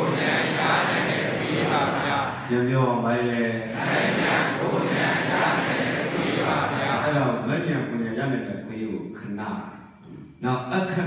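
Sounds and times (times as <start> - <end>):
man preaching over microphone: 2.3 - 3.8, 6.8 - 11.0.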